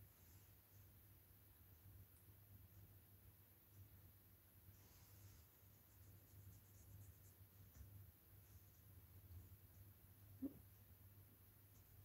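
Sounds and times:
low steady hum: 0.0 - 12.0
paintbrush scratches: 4.8 - 7.9.

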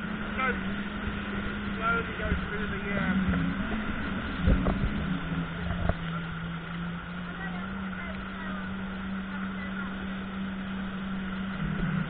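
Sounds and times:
jet ski engine running: 0.0 - 12.0
water rushing and spraying: 0.0 - 12.0.

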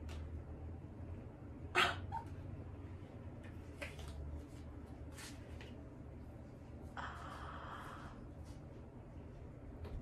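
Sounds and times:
pet animal sharp cry: 1.7 - 2.3.

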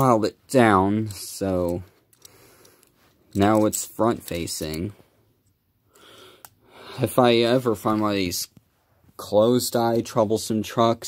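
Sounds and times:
short breath drawn in: 5.9 - 7.0.

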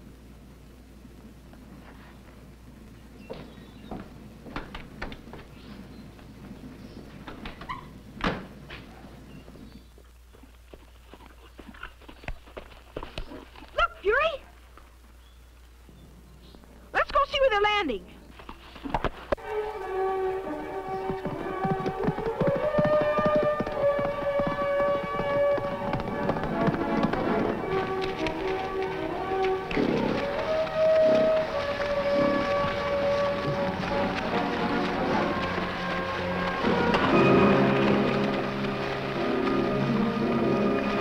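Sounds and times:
orchestral score: 19.4 - 41.0.

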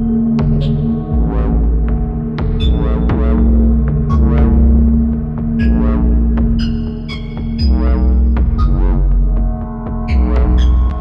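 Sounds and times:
deep pulsing synth bass: 0.0 - 11.0.

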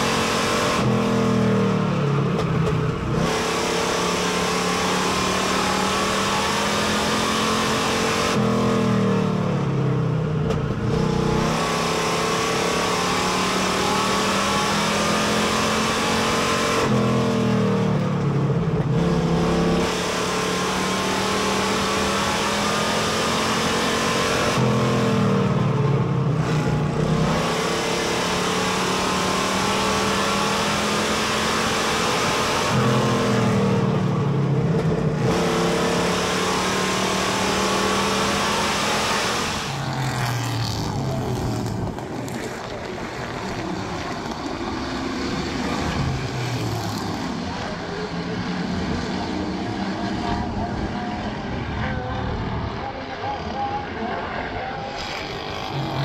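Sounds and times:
race car engine at speed: 0.0 - 56.0.

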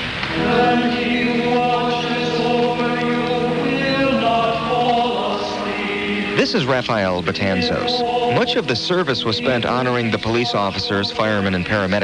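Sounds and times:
group singing a slow hymn: 0.1 - 11.8.

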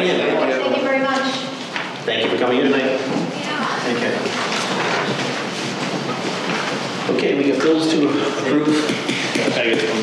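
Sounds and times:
shuffling: 3.0 - 7.2
people getting up from chairs: 3.0 - 10.0.

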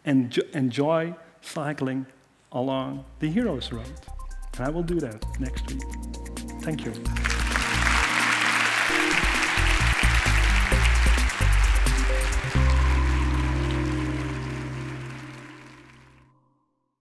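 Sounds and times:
closing music: 6.6 - 16.3
audience applauding: 7.1 - 16.2.

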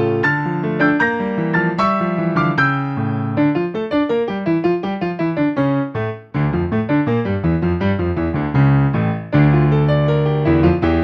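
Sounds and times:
solo piano playing: 0.0 - 11.0.

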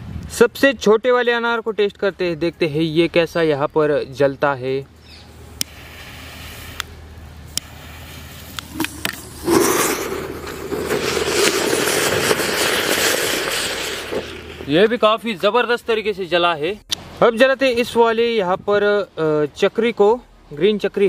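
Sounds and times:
fountain firework spraying hiss: 5.4 - 15.0
jet lighter hissing and clicking: 5.6 - 9.6.

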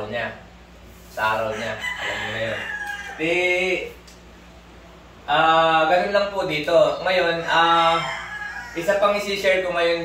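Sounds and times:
man speaking: 0.0 - 0.5, 1.1 - 4.0, 5.2 - 8.2, 8.8 - 10.0
rooster crowing: 1.3 - 3.9, 7.2 - 9.6.

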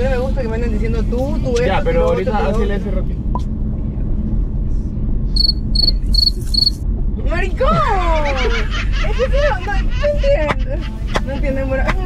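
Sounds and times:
car engine and road rumble: 0.0 - 12.0
cricket chirps: 5.4 - 6.8.

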